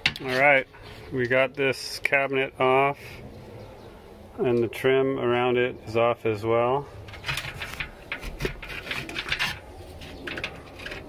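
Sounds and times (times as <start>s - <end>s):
scattered clicks and rustles: 7.1s - 11.0s.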